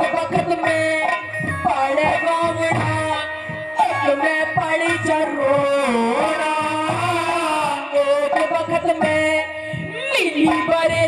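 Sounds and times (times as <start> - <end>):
hand-drum strokes: 0.0 - 11.0
woman singing through pa: 0.0 - 11.0.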